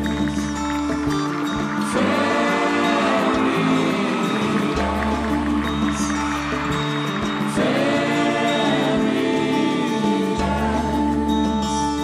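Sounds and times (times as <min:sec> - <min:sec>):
steady drum beat: 0:00.0 - 0:11.4
folk band melody: 0:00.0 - 0:12.0.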